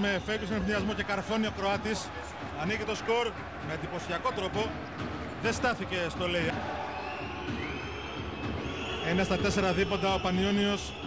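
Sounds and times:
arena crowd noise: 0:00.0 - 0:11.0
high whistles from crowd: 0:06.5 - 0:11.0.

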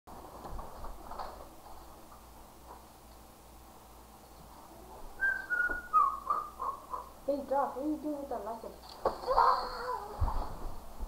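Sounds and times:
person whistling: 0:05.2 - 0:06.6.

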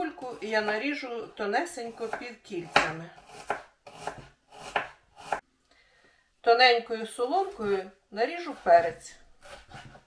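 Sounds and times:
knife slicing onion: 0:00.0 - 0:05.4, 0:08.3 - 0:10.0.

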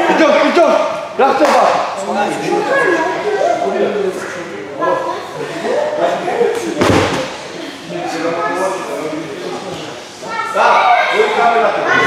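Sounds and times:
men's voices: 0:00.0 - 0:10.2.

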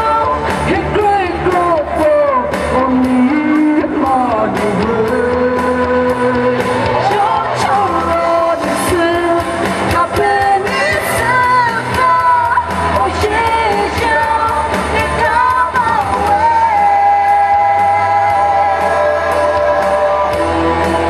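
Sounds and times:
woman singing into a microphone: 0:00.0 - 0:20.4
amplified rock band backing: 0:00.0 - 0:21.0
steady drum beat: 0:00.0 - 0:21.0.

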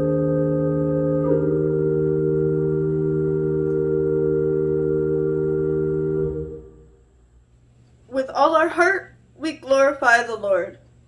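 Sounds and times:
pipe organ chord: 0:00.0 - 0:07.2.

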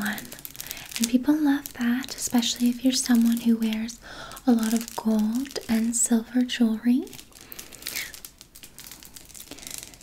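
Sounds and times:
handbag crinkling and rustling: 0:00.0 - 0:10.0.

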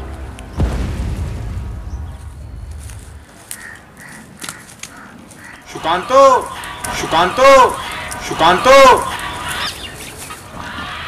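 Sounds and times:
birds chirping: 0:00.0 - 0:11.0
steady outdoor hiss: 0:00.0 - 0:11.0.

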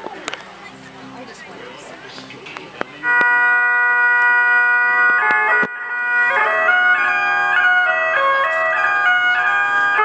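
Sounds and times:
faint voices: 0:00.0 - 0:03.4
bagpipe playing: 0:02.9 - 0:10.0.

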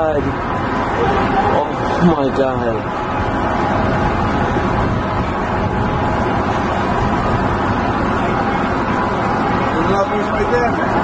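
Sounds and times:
city traffic: 0:00.0 - 0:11.0
wind on microphone: 0:02.8 - 0:09.7.

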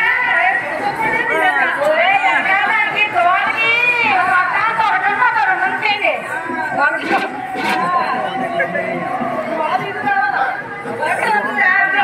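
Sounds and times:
several people talking: 0:00.0 - 0:12.0.

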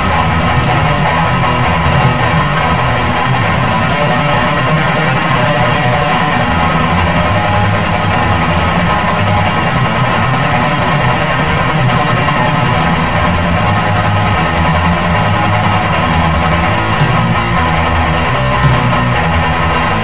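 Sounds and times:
bass and drums: 0:00.0 - 0:20.0
distorted electric guitar: 0:00.0 - 0:20.0.

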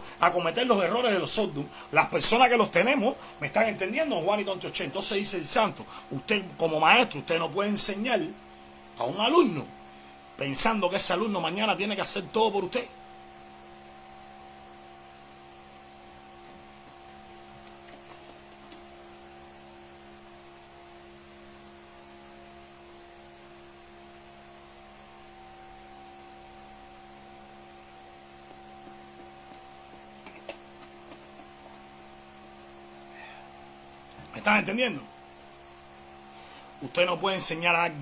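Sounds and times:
low electrical hum: 0:00.0 - 0:38.0
faint clicks and knocks: 0:29.2 - 0:31.9.

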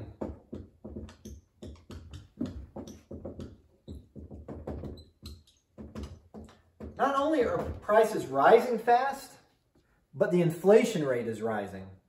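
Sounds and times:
marker writing on whiteboard: 0:00.0 - 0:08.2
marker squeaks: 0:03.8 - 0:06.2.

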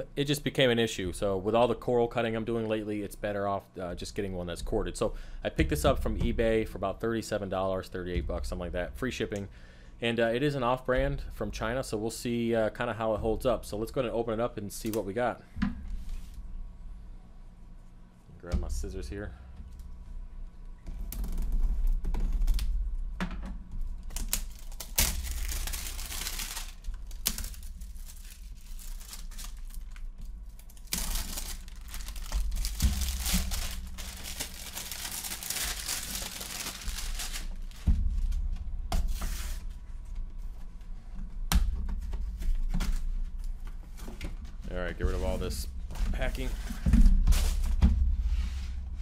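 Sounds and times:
plastic wrap crackling: 0:24.0 - 0:38.4
cardboard tearing: 0:24.1 - 0:30.0, 0:30.6 - 0:37.8
scissors cutting plastic wrap: 0:24.1 - 0:37.8.

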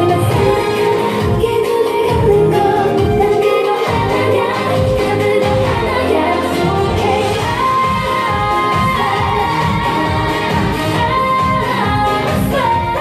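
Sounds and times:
pop song with female vocals: 0:00.0 - 0:13.0.

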